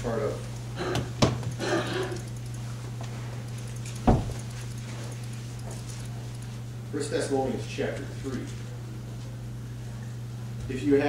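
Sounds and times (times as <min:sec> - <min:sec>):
steady low hum: 0:00.0 - 0:11.0
heavy thump: 0:04.1 - 0:04.4.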